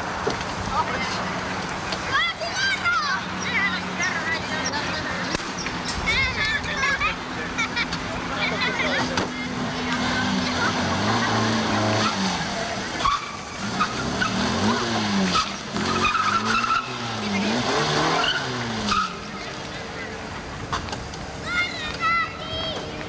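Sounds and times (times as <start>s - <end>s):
car engine revving: 0.0s - 21.4s
tyre squeals: 13.0s - 19.5s.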